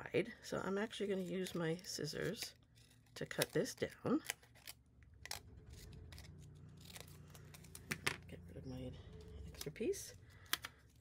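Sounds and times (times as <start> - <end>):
scissors cutting paper: 1.0 - 8.0.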